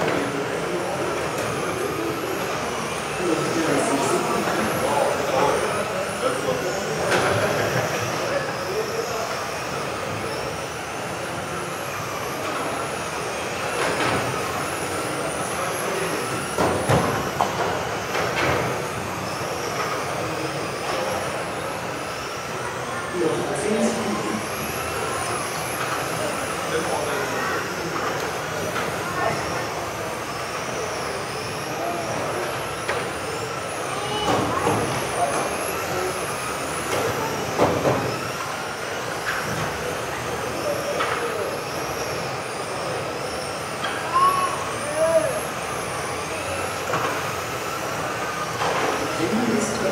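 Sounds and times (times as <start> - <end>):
rc car motors whining: 0.0 - 49.9.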